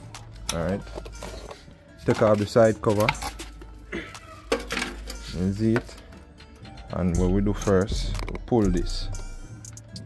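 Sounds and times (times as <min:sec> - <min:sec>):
plastic cover being handled: 0:00.6 - 0:05.1.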